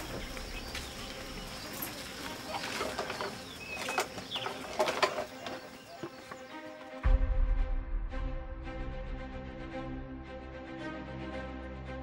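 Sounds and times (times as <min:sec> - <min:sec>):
birds calling: 0:00.0 - 0:07.0.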